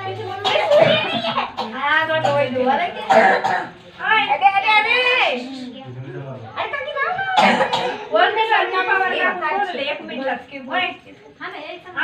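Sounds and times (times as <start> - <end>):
people talking indoors: 0.0 - 12.0.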